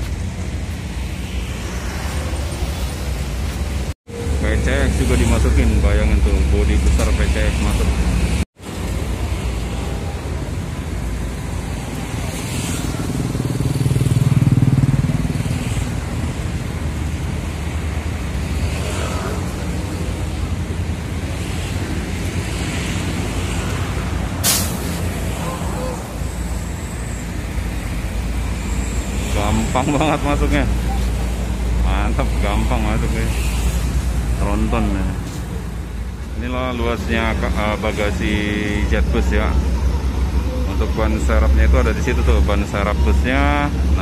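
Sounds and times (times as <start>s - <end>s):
diesel buses idling: 23.2s - 44.0s
air brake hiss: 24.4s - 25.1s.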